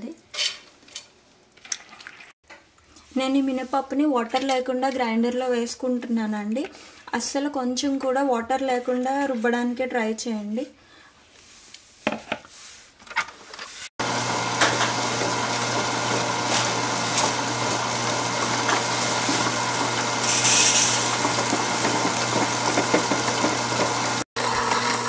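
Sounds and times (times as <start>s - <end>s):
food processor grinding batter: 14.0s - 25.0s.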